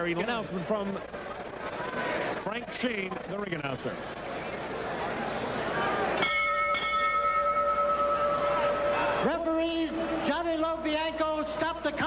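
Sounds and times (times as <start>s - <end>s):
boxing ring bell: 6.2s - 9.3s.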